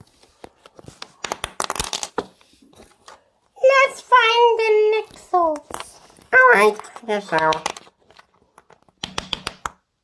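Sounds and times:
hands handling plastic toys: 0.0s - 9.9s.

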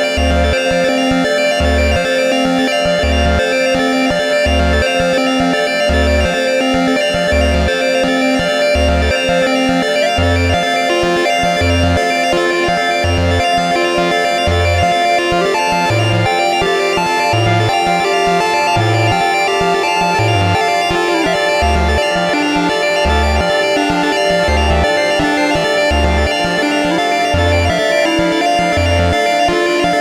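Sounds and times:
synthesizer drone with pulsing bass: 0.0s - 30.0s
synthesizer melody line: 0.0s - 30.0s.

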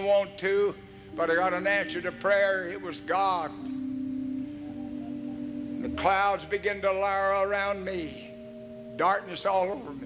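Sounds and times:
held organ note: 0.0s - 10.0s
faint higher tone: 3.4s - 9.1s.

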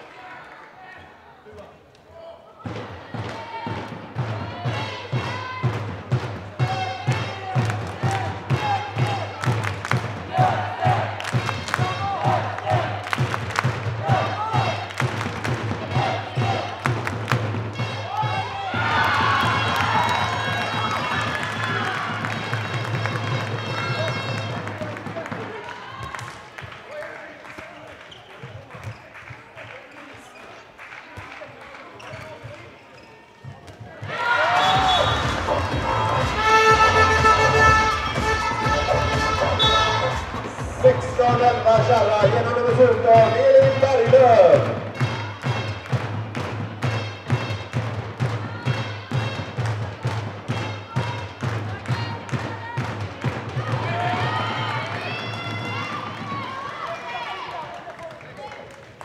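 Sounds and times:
voices in hall: 0.0s - 13.2s, 15.7s - 45.6s
music in hall: 3.0s - 26.0s, 34.2s - 56.9s
handball bouncing on hall floor: 27.5s - 30.4s, 31.2s - 40.4s.

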